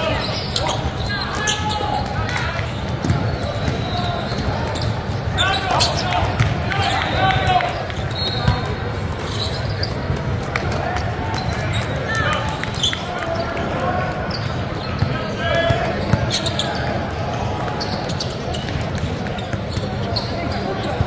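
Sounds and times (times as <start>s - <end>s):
chatter of players and spectators: 0.0s - 21.0s
sneakers squeaking: 0.0s - 21.0s.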